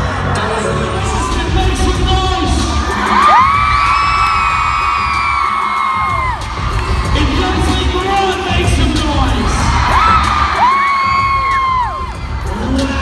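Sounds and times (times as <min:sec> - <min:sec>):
arena crowd noise: 0:00.0 - 0:13.0
music over sound system: 0:00.0 - 0:13.0.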